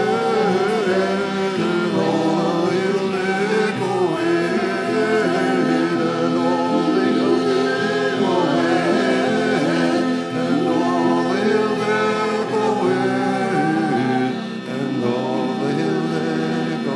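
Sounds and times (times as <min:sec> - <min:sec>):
guitar accompaniment: 0:00.0 - 0:16.9
harmonium drone: 0:00.0 - 0:16.9
men singing in harmony: 0:00.0 - 0:16.9.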